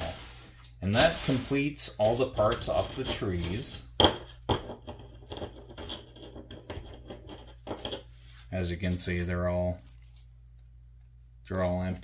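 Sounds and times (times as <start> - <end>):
paper sheets rustling: 0.0 - 3.7.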